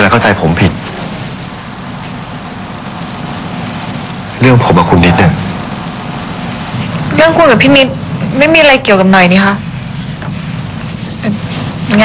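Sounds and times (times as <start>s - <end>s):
low hum: 0.0s - 12.0s
steady hiss: 0.0s - 12.0s.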